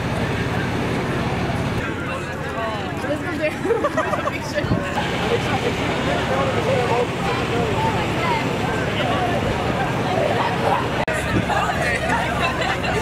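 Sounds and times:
crowd talking: 0:00.0 - 0:13.0.

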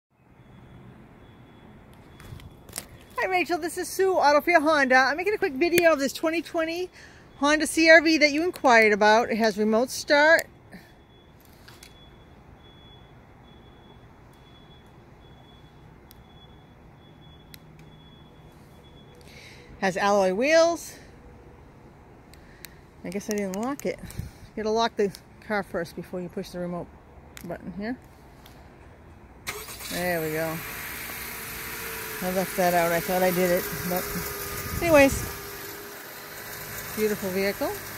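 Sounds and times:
car engine starting and running: 0:29.4 - 0:37.9
thin steady high tone: 0:31.5 - 0:37.9.

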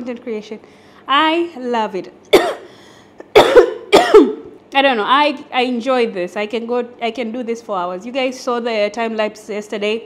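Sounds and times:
woman coughing: 0:02.3 - 0:04.6.

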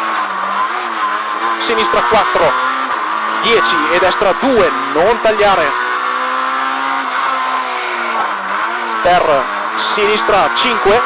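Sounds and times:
car engine pulling hard: 0:00.0 - 0:11.0.

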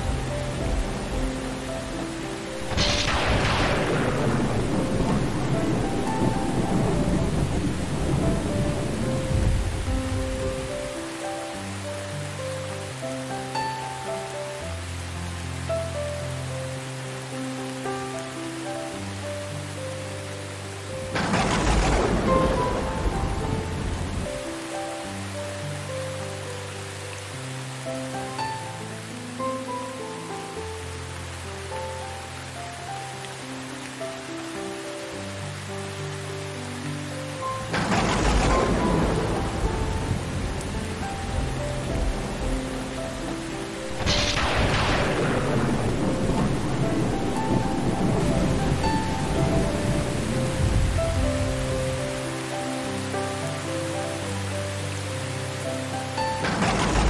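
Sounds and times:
slow instrumental music: 0:00.0 - 0:57.0
steady rain: 0:00.0 - 0:57.0
thunder rolling: 0:02.6 - 0:10.9, 0:21.0 - 0:24.5, 0:37.6 - 0:52.0, 0:56.4 - 0:57.0.

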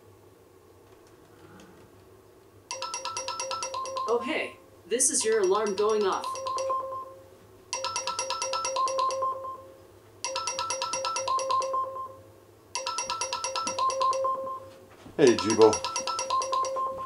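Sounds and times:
robot alarm tune of ringing notes: 0:02.7 - 0:12.2, 0:12.8 - 0:17.0.

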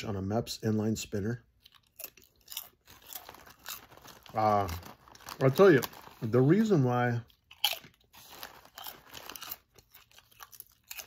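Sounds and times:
person chewing crunchy chip: 0:01.6 - 0:11.0.

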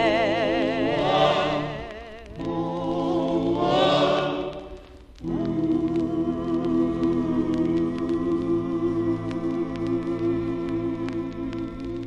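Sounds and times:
choir and orchestra sustained chords: 0:00.0 - 0:12.0.

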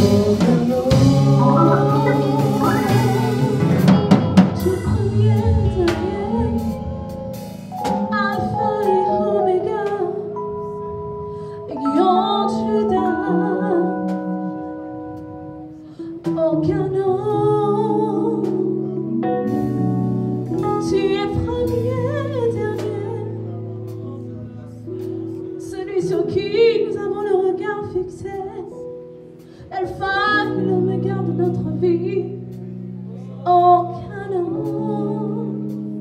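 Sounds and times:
vocal group singing in harmony: 0:00.0 - 0:04.1
quiet guitar accompaniment: 0:00.0 - 0:36.0
sustained accompanying chords: 0:01.2 - 0:04.1.

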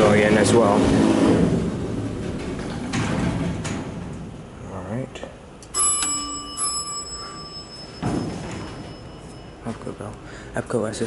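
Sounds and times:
elevator bell ding: 0:05.7 - 0:10.0.

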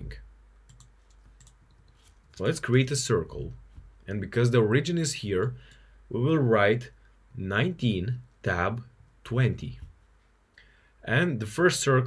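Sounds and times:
low steady hum: 0:00.0 - 0:12.0
computer clicks: 0:00.7 - 0:02.4.

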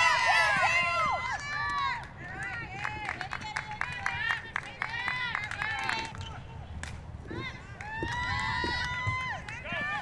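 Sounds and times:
voices shouting and cheering: 0:00.0 - 0:06.7, 0:07.3 - 0:10.0.

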